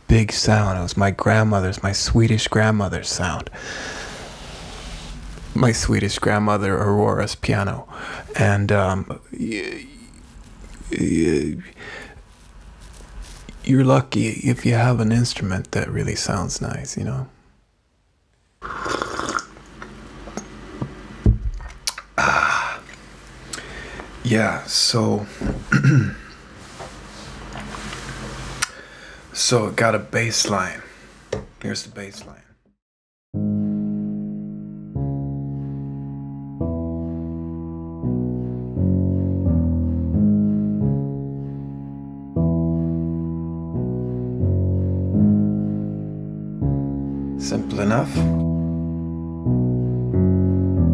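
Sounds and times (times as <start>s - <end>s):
breathy exhale: 3.5s - 5.3s, 7.9s - 8.4s, 11.7s - 12.3s, 22.2s - 24.2s, 28.6s - 29.3s
slurping hot drink: 18.6s - 19.9s
digital piano slow bassline: 21.2s - 23.7s, 33.4s - 50.9s.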